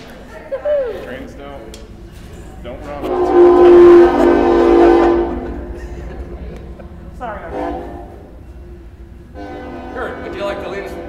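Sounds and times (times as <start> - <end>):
low rumble: 1.3 - 11.0
train horn chord: 2.0 - 11.0.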